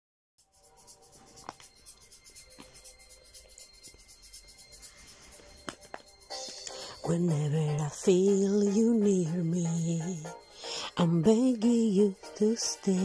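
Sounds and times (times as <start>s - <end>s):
faint held musical tones: 0.4s - 13.0s.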